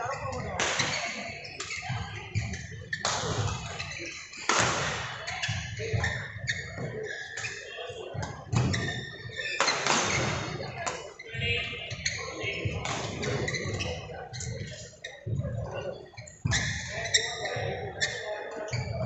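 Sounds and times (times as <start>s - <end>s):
background chatter in a hall: 0.0s - 19.0s.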